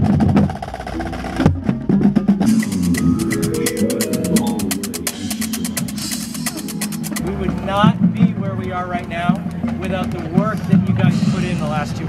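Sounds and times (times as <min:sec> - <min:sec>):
marching bass drums: 0:00.0 - 0:12.0.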